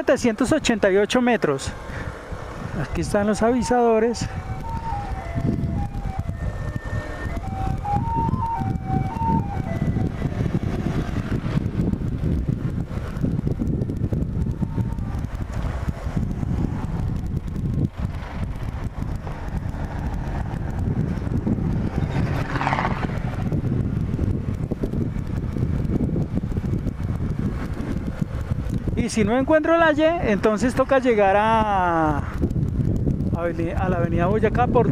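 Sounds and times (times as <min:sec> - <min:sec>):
motorcycle engine rumble: 0:00.0 - 0:34.9
wind on microphone: 0:00.0 - 0:34.9.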